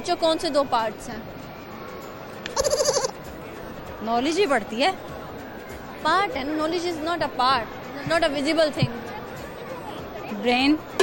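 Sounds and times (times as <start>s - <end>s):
crowd murmur: 0.0s - 11.0s
high quavering bleat-like voice: 2.6s - 3.2s.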